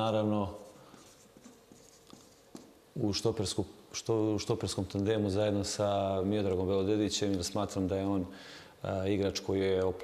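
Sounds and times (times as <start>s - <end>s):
marker scratching on paper: 0.6s - 2.7s.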